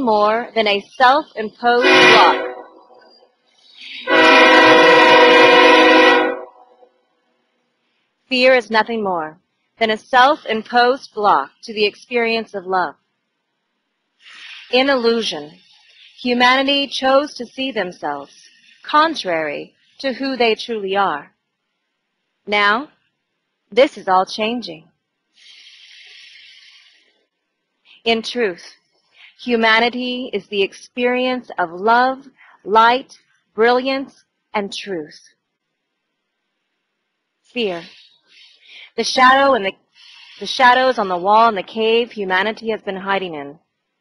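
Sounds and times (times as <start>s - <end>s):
loud horn blast chord: 1.8s - 3.0s, 4.1s - 6.6s
airy hiss: 25.4s - 27.0s.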